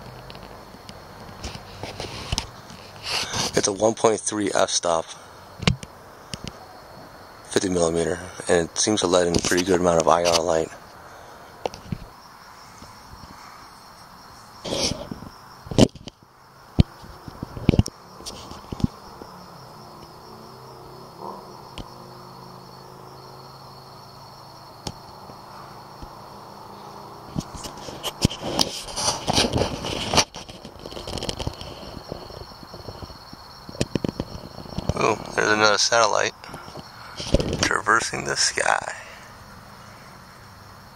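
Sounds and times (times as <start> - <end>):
rustling: 0.0 - 3.8, 9.3 - 16.2, 16.8 - 20.2, 25.1 - 35.8, 36.4 - 38.9
insect chorus at night: 0.0 - 40.9
sharp clicks and knocks: 5.6 - 6.6, 16.8 - 19.0, 27.3 - 35.0.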